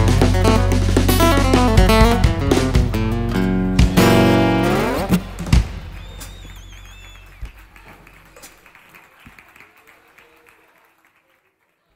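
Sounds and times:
acoustic guitar chord: 0.0s - 5.6s
sharp thumps: 0.0s - 6.4s
light scattered clapping: 3.8s - 11.9s
wavering whistle: 5.9s - 7.5s.

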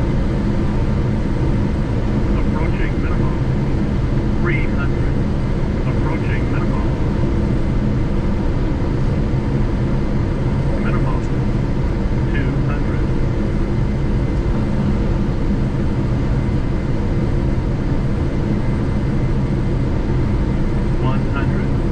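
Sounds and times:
cockpit airflow and engine noise: 0.0s - 21.9s.

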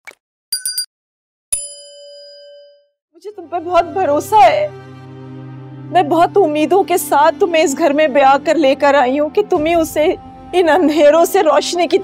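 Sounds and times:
bell ding: 0.6s - 0.9s, 1.5s - 2.9s.

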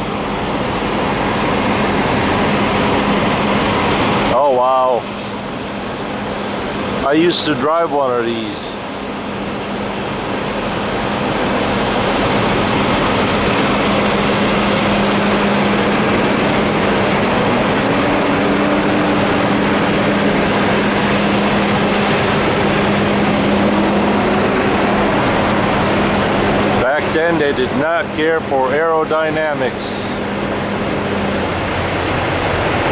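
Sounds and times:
engine idling: 0.0s - 32.9s.

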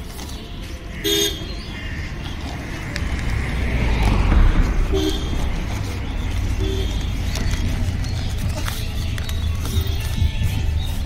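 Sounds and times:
street traffic rumble: 0.0s - 11.0s
vehicle horn toot: 1.0s - 1.6s, 4.8s - 5.9s, 6.6s - 7.3s.

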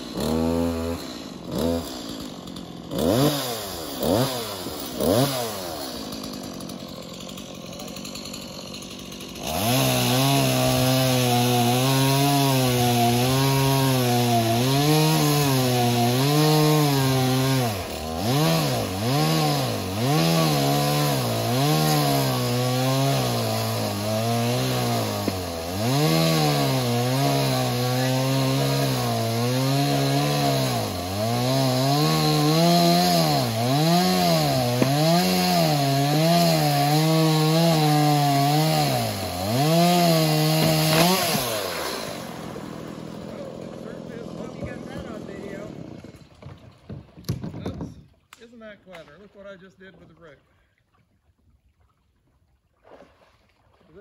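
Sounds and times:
chainsaw cutting log: 0.0s - 50.3s.

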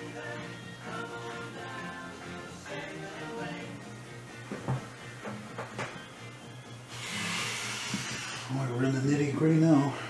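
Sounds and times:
background music: 0.0s - 10.0s
hiss of air spray: 6.9s - 8.6s.

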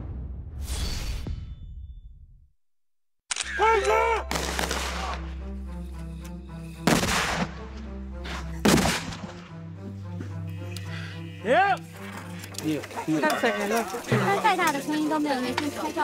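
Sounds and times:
background music held notes: 3.6s - 16.0s.

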